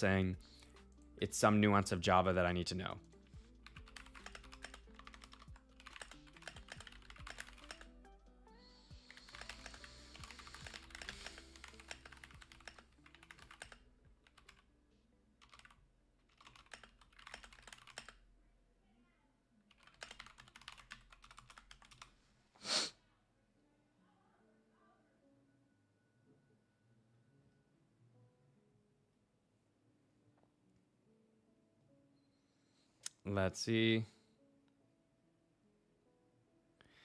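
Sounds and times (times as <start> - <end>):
quiet background music: 0.0 - 37.0
computer keyboard typing: 2.9 - 8.0, 8.9 - 14.6, 15.4 - 18.2, 19.7 - 22.2.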